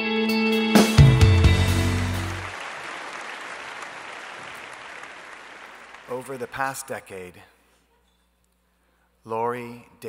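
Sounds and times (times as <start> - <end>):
electric guitar chord ringing: 0.0 - 2.5
audience applauding: 1.0 - 6.8.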